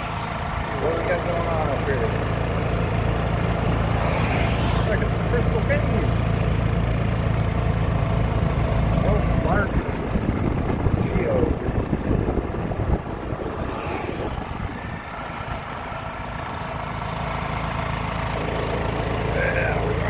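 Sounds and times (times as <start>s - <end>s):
golf cart motor running: 0.0s - 20.0s
road noise: 0.0s - 20.0s.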